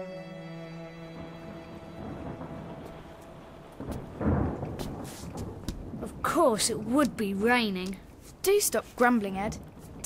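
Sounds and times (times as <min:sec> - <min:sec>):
orchestral music: 0:00.0 - 0:05.3
steady rain: 0:01.0 - 0:10.0
thunder rumbling: 0:01.2 - 0:08.2.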